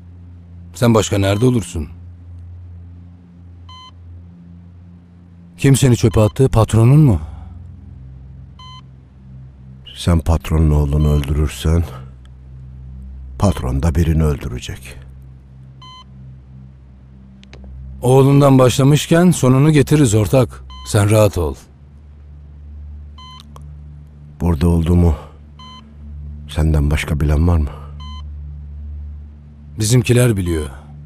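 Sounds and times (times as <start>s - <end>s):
low steady hum: 0.0s - 31.0s
patient monitor beep: 1.1s - 1.7s, 3.7s - 4.0s, 5.8s - 6.5s, 8.6s - 8.9s, 10.8s - 12.0s, 13.4s - 13.7s, 15.8s - 16.4s, 20.6s - 21.2s, 23.2s - 23.6s, 25.5s - 26.1s, 27.7s - 28.3s
short electronic beep: 3.7s - 3.9s, 15.8s - 16.1s, 23.2s - 23.5s, 28.0s - 28.2s.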